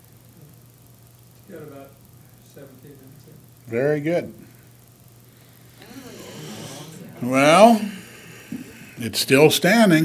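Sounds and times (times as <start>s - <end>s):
low room hum: 0.0s - 10.0s
faint voice murmuring: 5.7s - 9.0s.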